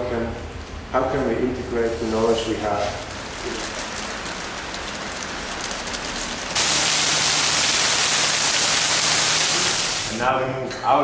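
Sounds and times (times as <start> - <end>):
rain falling steadily: 1.6 - 10.2.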